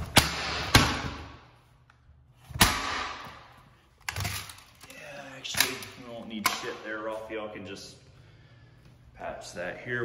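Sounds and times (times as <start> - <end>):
sharp knocks echoing in a room: 0.0 - 1.6, 2.5 - 3.8, 6.4 - 6.8.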